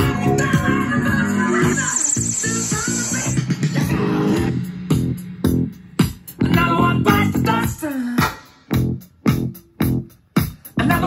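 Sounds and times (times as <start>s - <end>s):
music with bass and drum beat: 0.0s - 11.0s.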